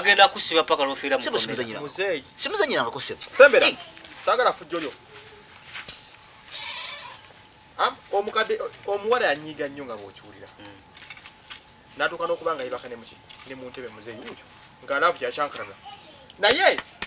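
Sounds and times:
men talking: 0.0 - 5.0
crickets chirring: 0.0 - 17.0.

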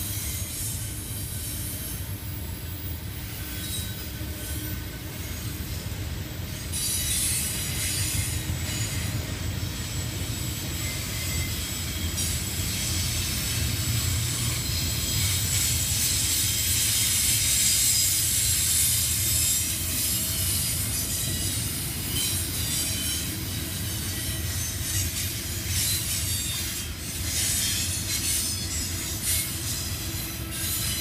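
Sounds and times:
freight train rumbling past: 0.0 - 31.0.

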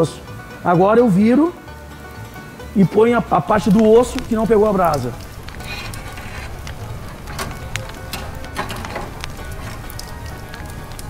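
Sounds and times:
meat sizzling over charcoal: 1.4 - 11.0
crackles and pops: 3.5 - 11.0.

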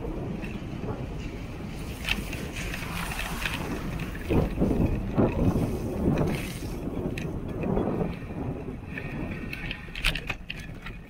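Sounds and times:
bicycle tyres on wet asphalt: 0.0 - 11.0
wind buffeting microphone: 0.0 - 11.0.

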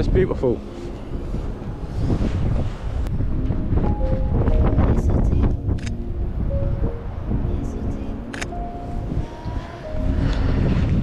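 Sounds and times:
wind buffeting microphone: 0.0 - 11.0
music of held notes: 3.0 - 11.0.

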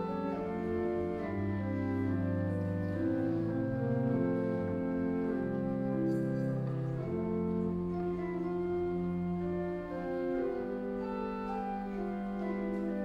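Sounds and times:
pipe organ chords: 0.0 - 13.0.

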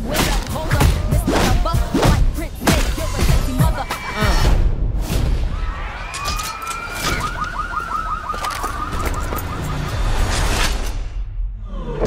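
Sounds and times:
emergency vehicle siren: 5.5 - 10.8.

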